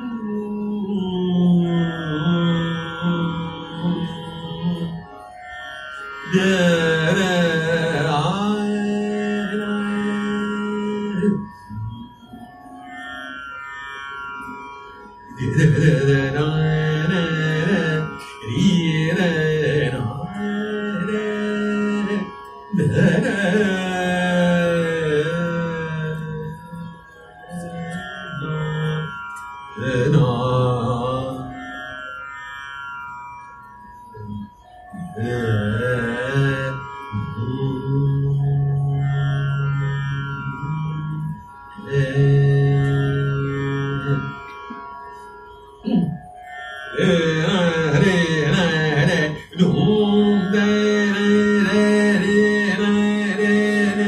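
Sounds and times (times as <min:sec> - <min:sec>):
harmonium drone: 0:00.0 - 0:54.0
man singing: 0:06.3 - 0:12.0, 0:15.4 - 0:26.9, 0:29.8 - 0:31.6, 0:35.0 - 0:38.8, 0:40.4 - 0:44.3, 0:47.0 - 0:54.0.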